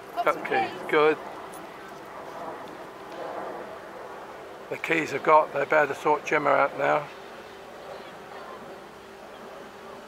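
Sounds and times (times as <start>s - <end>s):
faint even drone: 0.0s - 10.0s
outdoor background noise: 0.0s - 10.0s.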